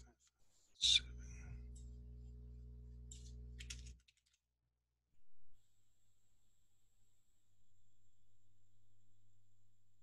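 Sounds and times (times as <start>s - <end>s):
steady low hum: 0.8s - 4.0s.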